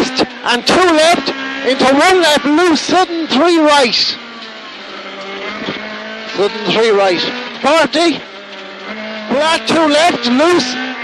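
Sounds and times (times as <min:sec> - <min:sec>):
car engine under power: 0:00.0 - 0:11.0
road and tyre noise: 0:00.0 - 0:11.0.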